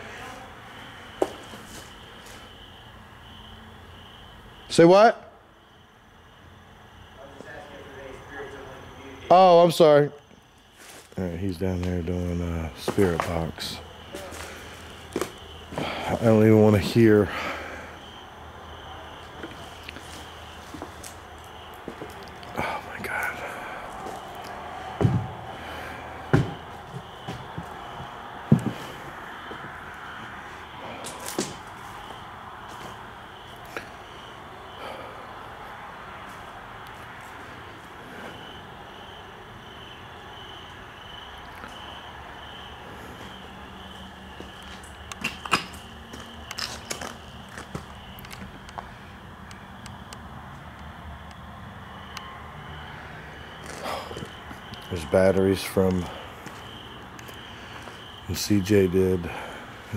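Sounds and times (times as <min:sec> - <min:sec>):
footsteps among loose boards: 0:14.1 - 0:16.0, 0:21.8 - 0:22.4, 0:26.3 - 0:29.8, 0:44.4 - 0:48.6.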